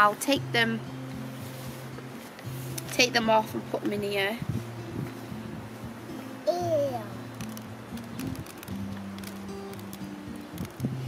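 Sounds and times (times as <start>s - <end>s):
soft music with low held notes: 0.0s - 11.0s.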